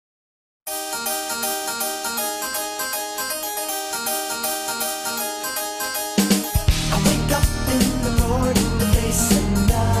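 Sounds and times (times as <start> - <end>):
harpsichord-like keyboard music: 0.7 - 10.0.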